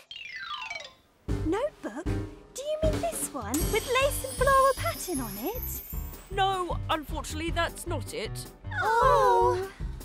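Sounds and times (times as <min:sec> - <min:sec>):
music: 0:01.2 - 0:10.0.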